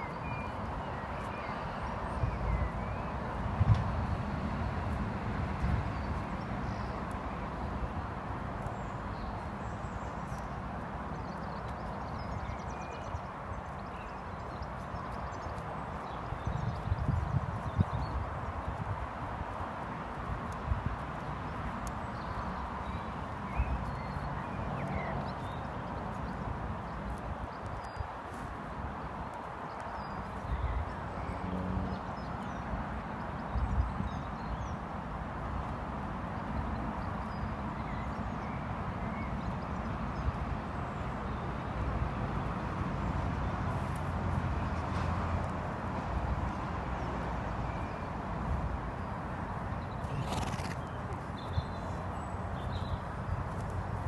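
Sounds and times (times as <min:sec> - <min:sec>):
hooves walking on grass: 0:00.2 - 0:32.0, 0:41.4 - 0:46.6, 0:48.6 - 0:54.0
horse hooves on grass: 0:49.8 - 0:54.0.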